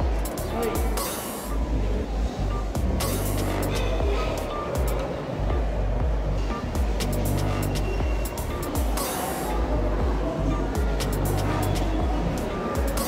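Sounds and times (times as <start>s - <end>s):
music with deep bass and percussion: 0.0s - 13.0s.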